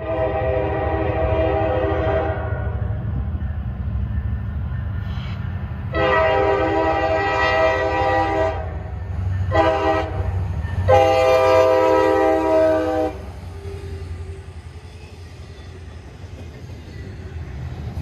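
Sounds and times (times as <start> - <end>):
locomotive air horn blasts: 0.0 - 3.0, 5.9 - 8.8, 9.5 - 13.3
passing train rumble: 0.0 - 18.0.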